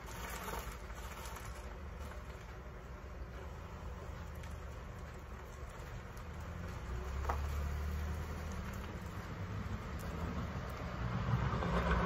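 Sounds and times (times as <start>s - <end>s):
low engine rumble: 0.0s - 12.0s
car driving past: 6.2s - 12.0s.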